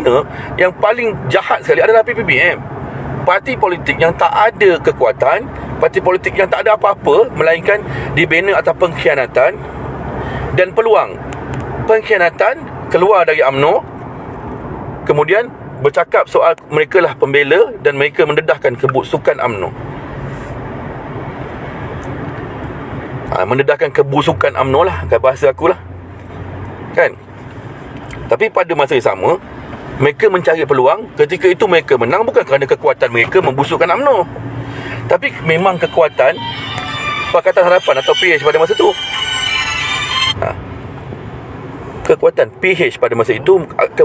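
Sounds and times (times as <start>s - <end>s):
car cabin road noise: 0.0s - 44.0s
music bed of steady tones: 34.6s - 41.2s
short sound: 34.6s - 41.2s.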